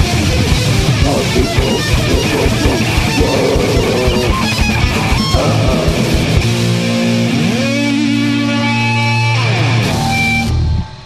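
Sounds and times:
distorted electric guitar: 0:00.0 - 0:11.0.

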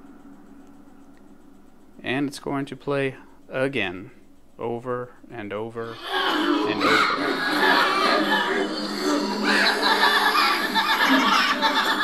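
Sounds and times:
eerie sound effects: 0:05.8 - 0:12.0.

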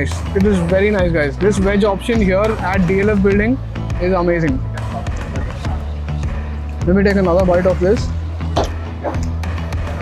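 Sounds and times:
man's voice: 0:00.0 - 0:08.2
background music with low bass: 0:00.0 - 0:10.0.

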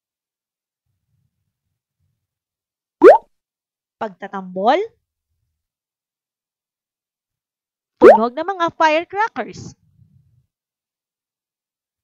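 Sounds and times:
rising bloop sound effect: 0:03.0 - 0:03.2.

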